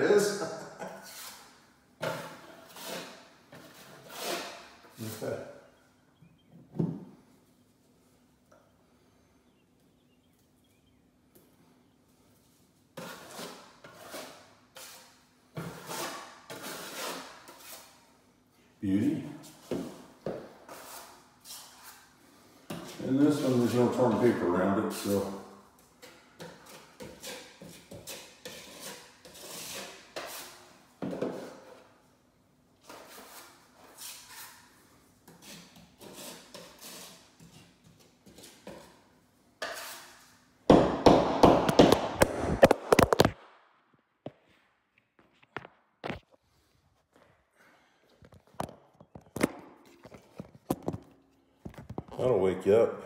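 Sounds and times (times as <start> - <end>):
drywall knife scraping compound: 0.8 - 5.7, 12.9 - 18.2, 19.4 - 32.0, 32.8 - 43.3.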